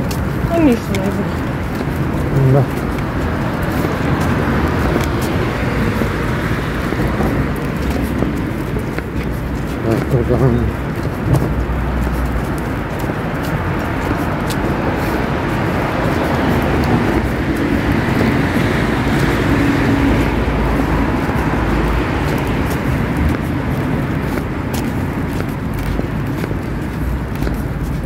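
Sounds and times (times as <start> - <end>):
city street traffic: 0.0 - 28.0
vehicle passing: 0.0 - 28.0.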